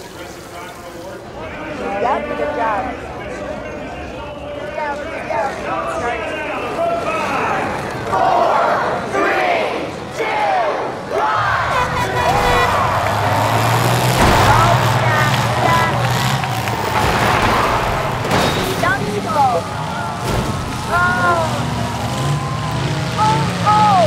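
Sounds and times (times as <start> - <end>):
crowd shouting and cheering: 0.0 - 24.0
car engines revving: 4.6 - 24.0
sharp bang: 14.1 - 15.0.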